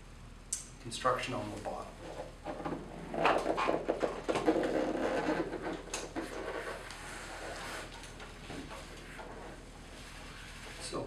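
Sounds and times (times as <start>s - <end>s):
paddleboard rubbing and knocking: 2.0s - 10.9s.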